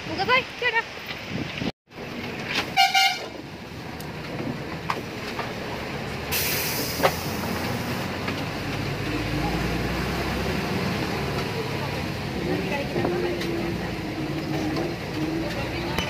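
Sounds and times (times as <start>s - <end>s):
vehicle running noise: 1.0s - 16.0s
vehicle horn toot: 2.7s - 3.3s.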